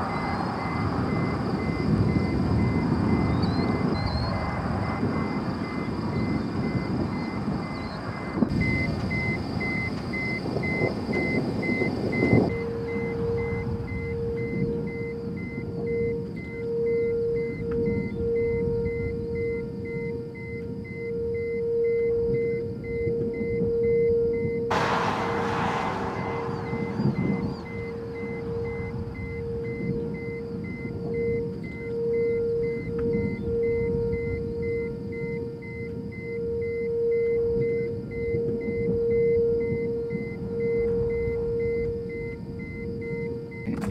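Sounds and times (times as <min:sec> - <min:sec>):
wind and road noise: 0:00.0 - 0:16.6, 0:24.7 - 0:36.1
droning background music: 0:00.0 - 0:43.9
short rush of noise: 0:24.7 - 0:30.2.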